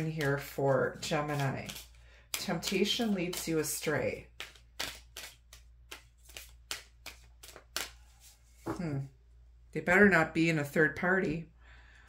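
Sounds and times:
cards shuffled by hand: 0.0s - 8.8s.

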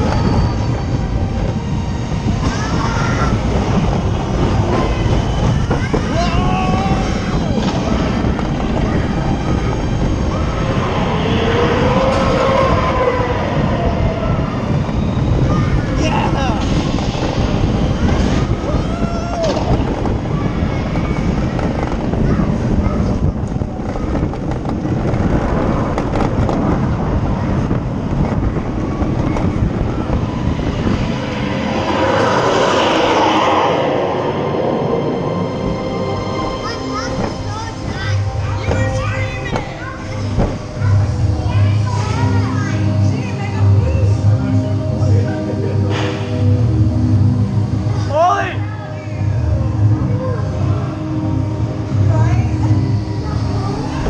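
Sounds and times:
roller coaster rumbling on track: 0.0s - 54.0s.

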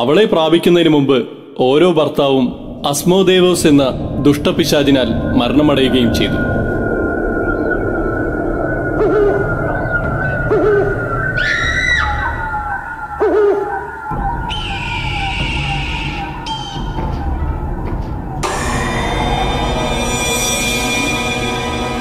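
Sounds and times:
rising wailing glide: 2.5s - 22.0s
music: 14.1s - 22.0s.

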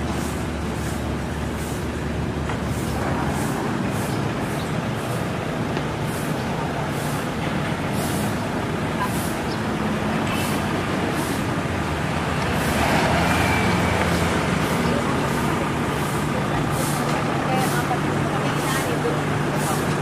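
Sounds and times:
street traffic noise: 0.0s - 20.0s
vehicle engine idling: 0.0s - 20.0s.

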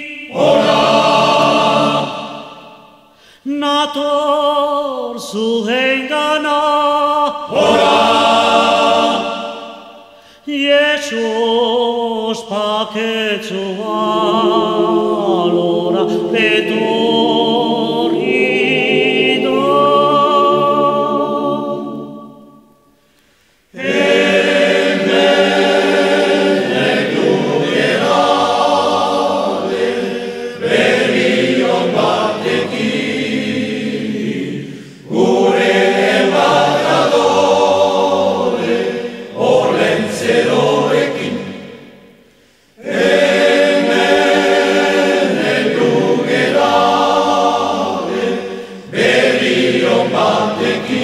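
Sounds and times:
choir singing: 0.0s - 3.2s, 5.2s - 23.0s, 23.7s - 51.0s.

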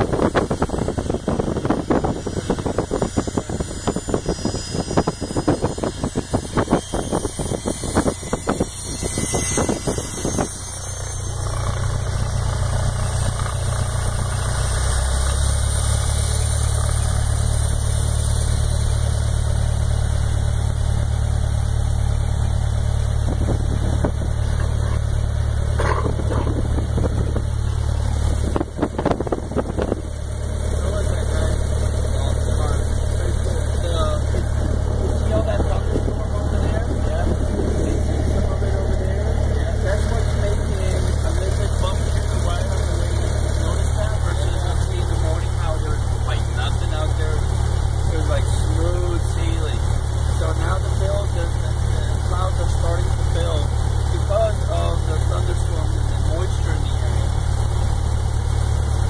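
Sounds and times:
aircraft engine drone: 0.0s - 57.4s.

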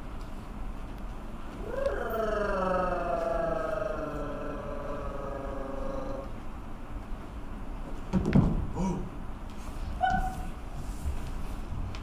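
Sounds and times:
sliding pitched tone: 1.6s - 6.4s.

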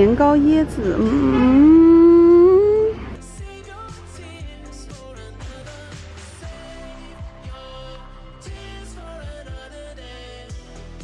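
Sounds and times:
woman humming: 0.8s - 3.2s
background pop music: 2.3s - 11.0s.

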